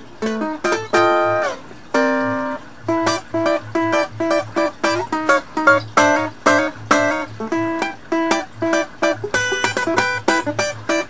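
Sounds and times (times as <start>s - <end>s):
acoustic guitar blues lick: 0.0s - 11.0s.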